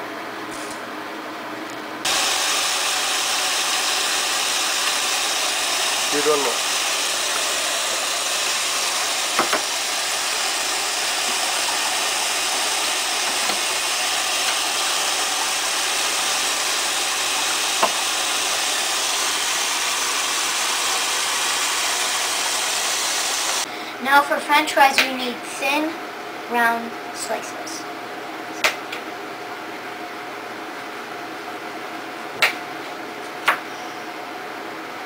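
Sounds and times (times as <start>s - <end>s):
faucet running into a pot: 2.1s - 23.6s.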